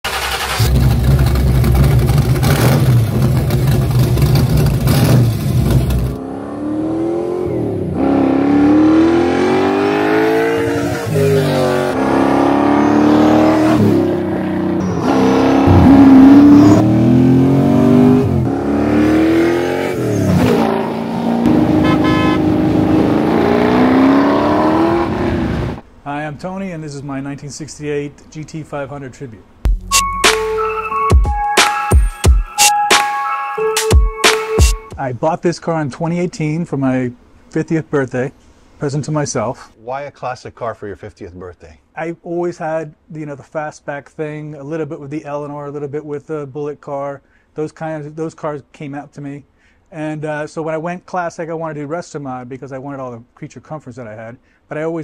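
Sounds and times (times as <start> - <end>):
engine idling and revving: 0.1 - 25.8.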